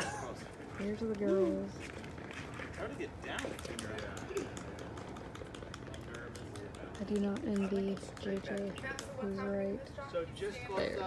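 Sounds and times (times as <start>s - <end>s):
outdoor ambience: 0.0s - 11.0s
people talking quietly: 0.0s - 11.0s.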